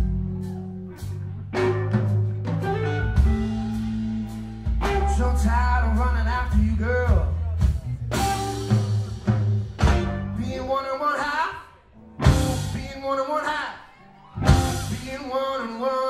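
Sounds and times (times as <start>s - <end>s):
deep bass guitar notes: 0.0s - 10.8s, 12.1s - 13.1s, 14.4s - 15.2s
drum hits: 7.6s - 10.4s, 12.2s - 12.8s.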